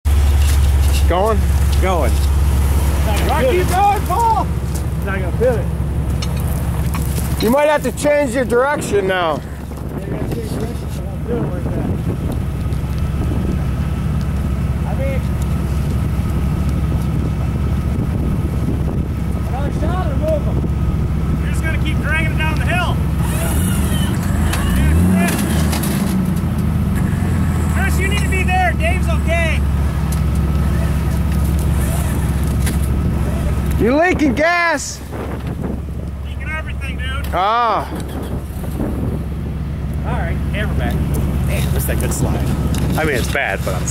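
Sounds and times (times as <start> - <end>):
vehicle engine idling: 0.0 - 43.9.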